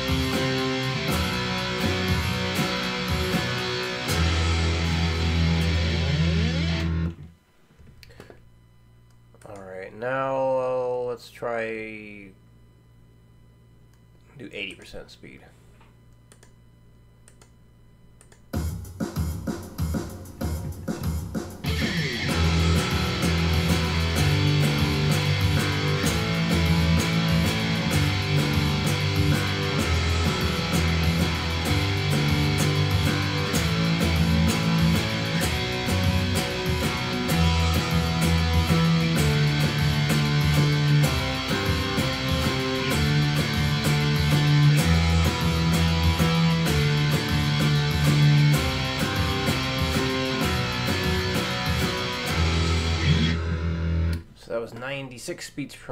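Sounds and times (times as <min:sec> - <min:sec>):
steady beat: 0:00.0 - 0:07.2, 0:18.2 - 0:54.9
electric guitar power-chord riff: 0:00.0 - 0:07.3, 0:20.5 - 0:54.4.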